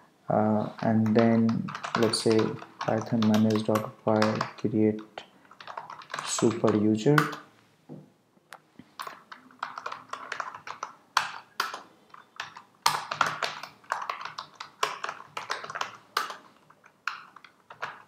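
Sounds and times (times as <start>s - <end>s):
typing on computer keyboard: 0.7s - 7.5s, 9.0s - 18.0s.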